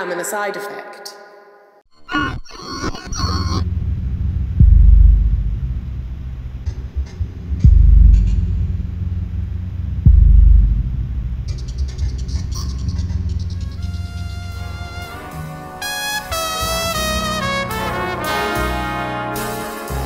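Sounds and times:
low rumbling drone: 0:03.1 - 0:19.0
higher-pitched music: 0:03.1 - 0:20.0
deep bass booms: 0:03.5 - 0:18.5.

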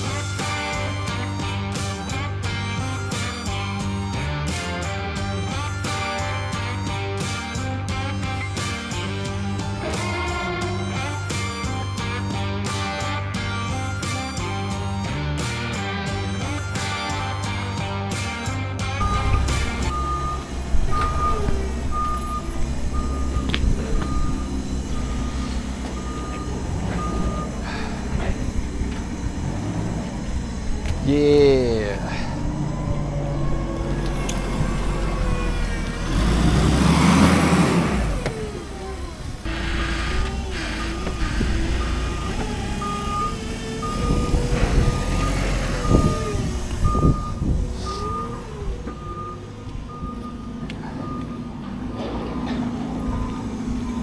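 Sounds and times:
forklift engine running: 0:00.0 - 0:54.0
forklift reversing alarm beeping: 0:19.0 - 0:54.0.

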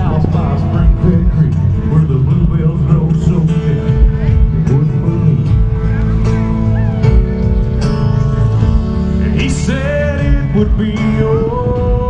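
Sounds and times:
man singing: 0:00.0 - 0:06.2, 0:09.1 - 0:12.0
live country band: 0:00.0 - 0:12.0.

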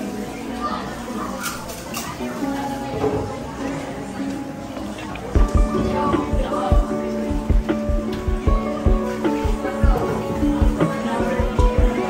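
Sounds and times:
indistinct chatter: 0:00.0 - 0:12.0
background music: 0:02.5 - 0:12.0.

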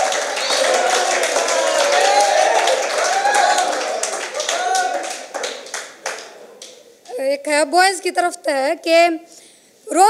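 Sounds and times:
audience clapping: 0:00.0 - 0:07.1.

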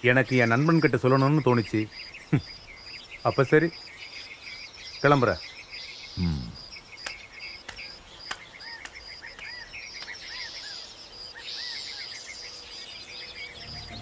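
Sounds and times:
insects trilling: 0:00.0 - 0:14.0
short arched chirping calls: 0:00.0 - 0:14.0
film score music: 0:13.6 - 0:14.0.

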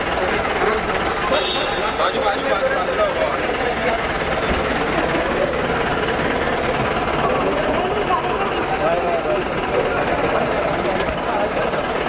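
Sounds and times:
faint crowd voices: 0:00.0 - 0:12.0
vehicle engine idling: 0:00.0 - 0:12.0.

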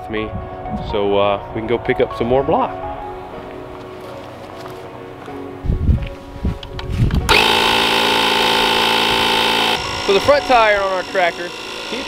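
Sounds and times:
small motorised tool running: 0:07.3 - 0:12.0.

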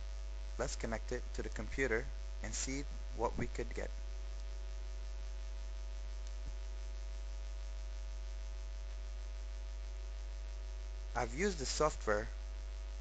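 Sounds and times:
electrical mains hum: 0:00.0 - 0:13.0.

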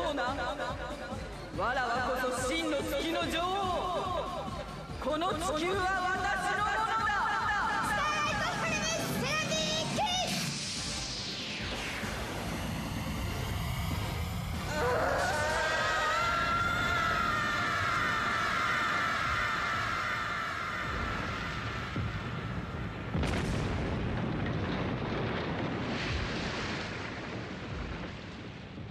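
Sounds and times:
rumbling explosion-like roar: 0:11.6 - 0:28.9
long drawn-out wail: 0:13.5 - 0:23.2.

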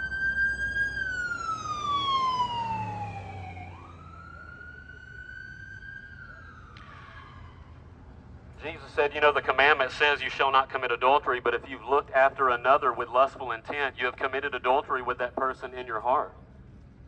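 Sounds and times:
emergency vehicle siren wailing: 0:00.0 - 0:16.4.

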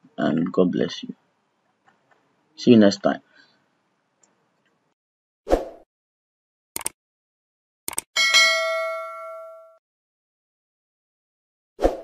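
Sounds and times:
notification bell ding: 0:08.2 - 0:09.8.

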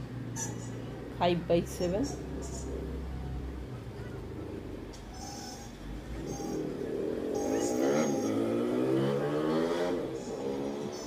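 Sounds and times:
engine droning with rising pitch: 0:00.0 - 0:11.0.

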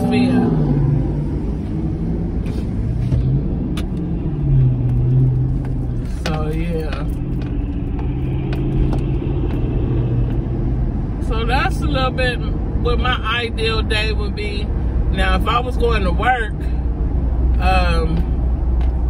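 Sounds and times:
car engine and road noise: 0:00.0 - 0:19.0.

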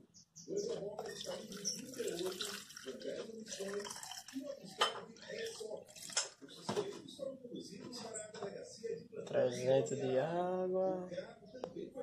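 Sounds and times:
water pouring into plastic cup: 0:01.0 - 0:04.7.

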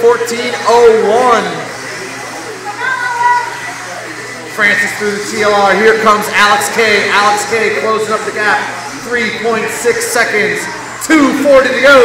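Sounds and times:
hall noise: 0:00.0 - 0:12.0
rc car motor whine: 0:00.0 - 0:12.0.

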